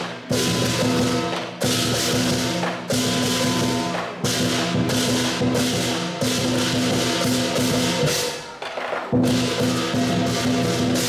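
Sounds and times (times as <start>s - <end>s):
gong: 0.0s - 8.4s, 9.2s - 11.0s
drum beating: 0.0s - 11.0s
hand cymbals clashing: 0.0s - 11.0s.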